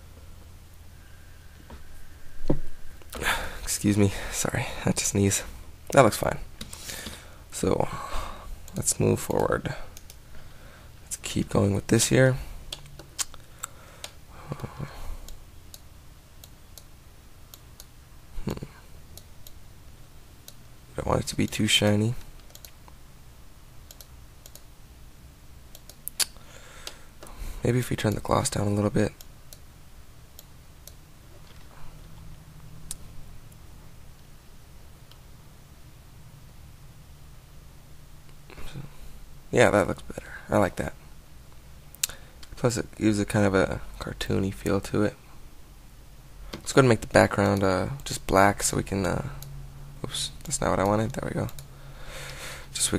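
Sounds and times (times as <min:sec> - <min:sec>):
steady low hum: 0:00.0 - 0:52.9
computer mouse clicking: 0:08.7 - 0:10.2, 0:22.3 - 0:23.0, 0:23.8 - 0:24.7, 0:25.7 - 0:27.0
computer mouse clicks: 0:22.3 - 0:23.0, 0:23.8 - 0:24.7, 0:25.7 - 0:27.0, 0:50.4 - 0:51.7.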